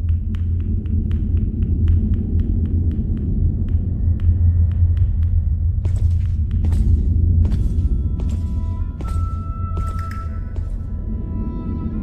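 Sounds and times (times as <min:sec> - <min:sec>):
deep rumbling hum: 0:00.0 - 0:12.0.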